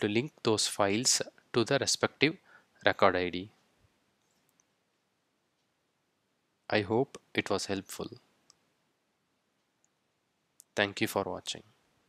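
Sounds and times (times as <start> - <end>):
person speaking: 0.0 - 3.6, 6.7 - 8.3, 10.6 - 11.7.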